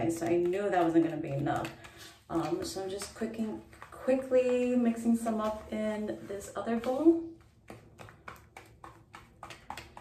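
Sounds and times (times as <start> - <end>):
brush scraping mixing bowl: 0.0 - 10.0.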